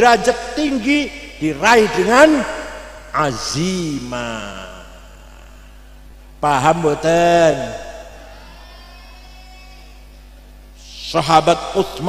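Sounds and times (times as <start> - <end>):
man talking: 0.0 - 5.0, 6.4 - 8.2, 10.8 - 12.0
low electrical hum: 0.0 - 12.0.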